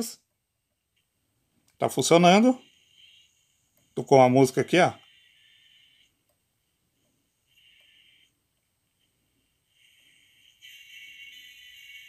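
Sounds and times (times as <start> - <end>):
tinny music from radio earphone: 1.8 - 12.0.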